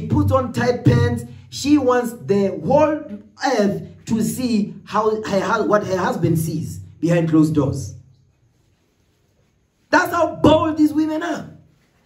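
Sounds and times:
man talking: 0:00.0 - 0:08.0, 0:09.9 - 0:11.7.

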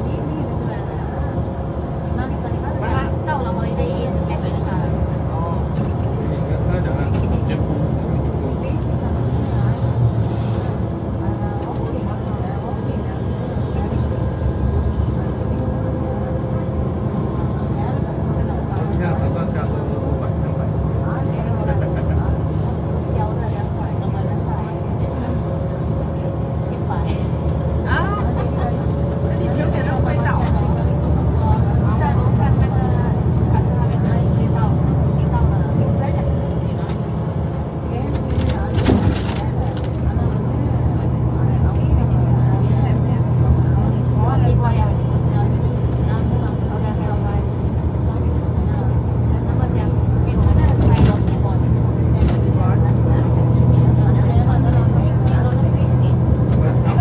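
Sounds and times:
bus engine and road drone: 0:00.0 - 0:57.0
passengers talking faintly: 0:00.0 - 0:57.0.

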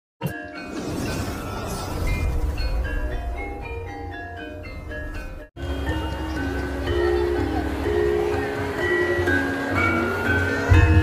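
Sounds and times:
gamelan metallophones ringing: 0:02.1 - 0:11.0.

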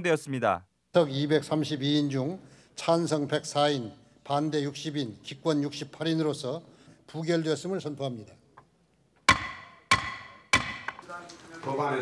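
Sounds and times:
wooden gavel knocking: 0:09.3 - 0:11.0.

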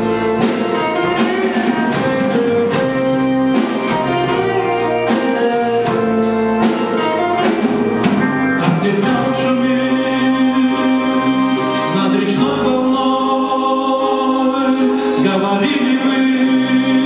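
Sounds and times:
drum kit beat: 0:00.0 - 0:10.0, 0:11.4 - 0:12.5
held keyboard chords: 0:00.0 - 0:17.0.

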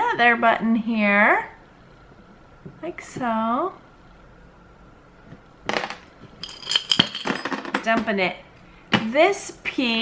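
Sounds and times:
metal trinkets clinking on glass: 0:06.4 - 0:07.6.

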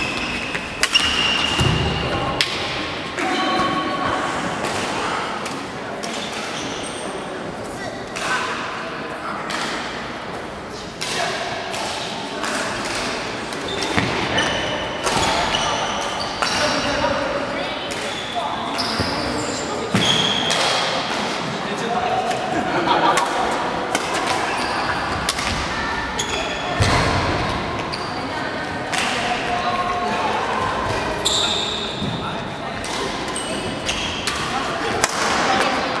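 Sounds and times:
background chatter: 0:01.5 - 0:19.9.

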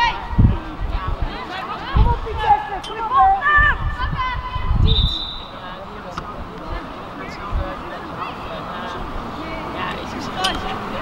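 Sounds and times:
players shouting: 0:00.0 - 0:05.8
referee's whistle blast: 0:04.8 - 0:05.7.

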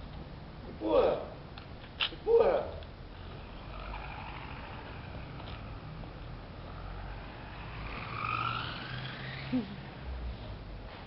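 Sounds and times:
steady low hum: 0:00.0 - 0:11.0
toy car motor whining: 0:03.2 - 0:10.2
person laughing: 0:09.5 - 0:09.8.

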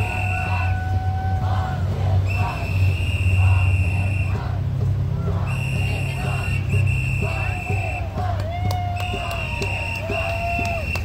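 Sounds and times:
crowd chanting in rhythm: 0:00.0 - 0:10.9
low rumble of street traffic: 0:00.0 - 0:11.0
long whistle blasts: 0:02.3 - 0:04.4, 0:05.5 - 0:08.0.

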